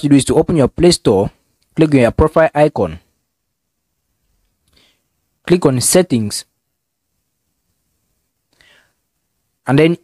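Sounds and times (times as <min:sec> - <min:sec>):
faint background hiss: 0:00.0 - 0:10.0
faint breath-like sound: 0:08.5 - 0:09.2.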